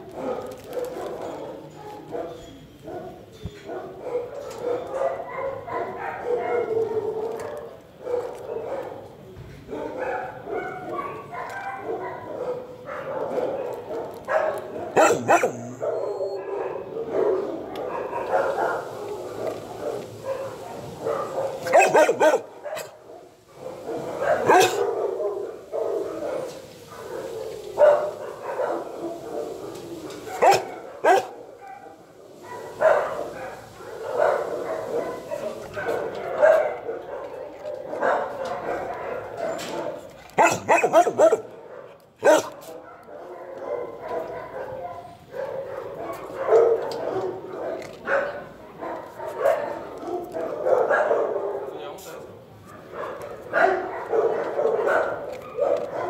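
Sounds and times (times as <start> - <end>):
dogs barking: 0.0 - 56.0.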